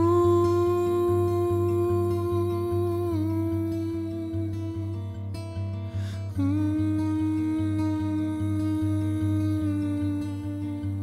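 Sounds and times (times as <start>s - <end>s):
man singing long wordless note: 0.0s - 5.0s, 6.3s - 11.0s
fingerpicked acoustic guitar: 0.0s - 11.0s.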